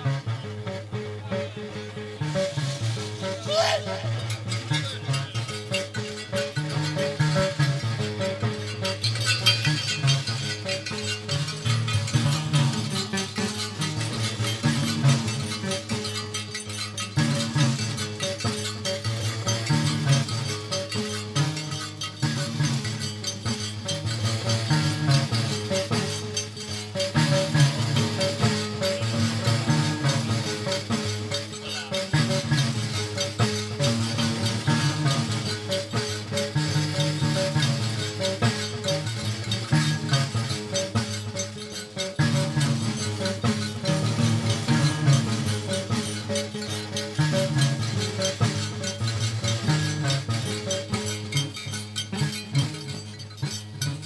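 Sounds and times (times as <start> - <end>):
iron scraper rhythm: 0.0 - 54.0
plucked lute figure: 0.0 - 54.0.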